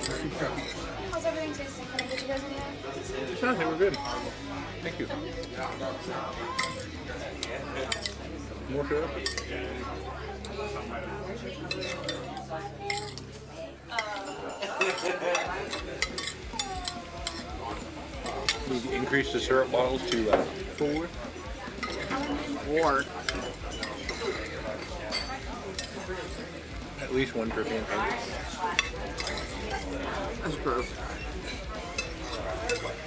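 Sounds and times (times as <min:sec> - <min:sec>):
forks clicking on plates: 0:00.0 - 0:00.8, 0:01.9 - 0:02.6, 0:06.5 - 0:08.3, 0:09.2 - 0:09.6, 0:11.7 - 0:19.1, 0:21.8 - 0:26.5, 0:28.2 - 0:29.9, 0:30.8 - 0:33.0
faint background voices: 0:00.0 - 0:33.0.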